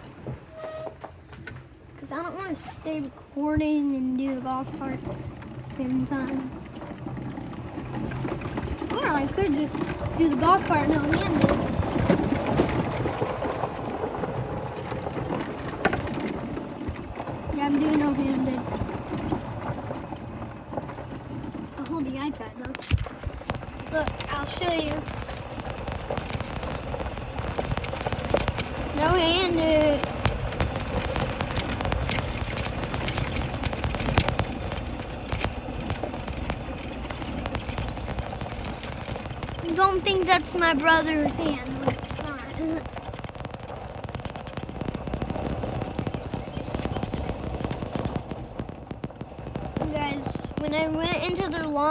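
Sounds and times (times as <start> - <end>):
golf cart driving: 0.0 - 51.9
child's voice: 2.0 - 6.5, 8.9 - 11.7, 17.5 - 18.7, 21.8 - 22.8, 23.9 - 25.1, 28.9 - 30.1, 39.6 - 42.9, 49.8 - 51.9.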